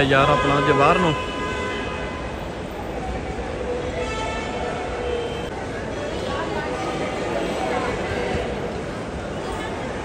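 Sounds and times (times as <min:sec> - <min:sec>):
faint voices: 0:02.6 - 0:10.0.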